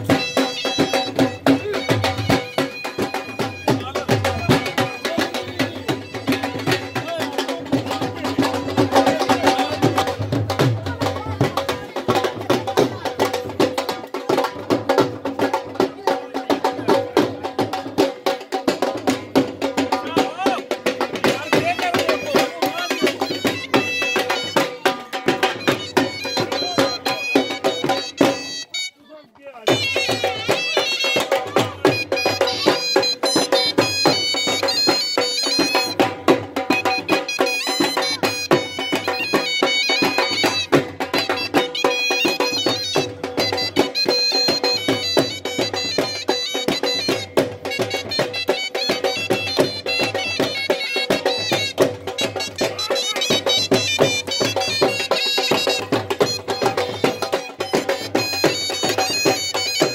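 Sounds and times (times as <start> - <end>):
drumbeats: 0.0 - 59.9.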